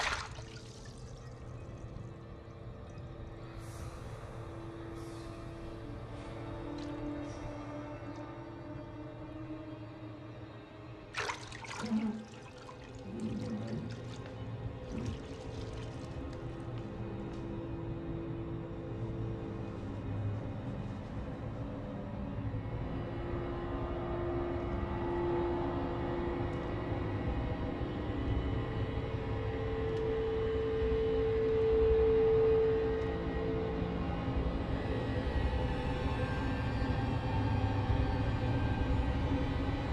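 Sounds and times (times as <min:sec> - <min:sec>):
bathwater splashing and streaming: 0:00.0 - 0:01.5, 0:11.1 - 0:16.7
low musical drone: 0:00.0 - 0:39.9.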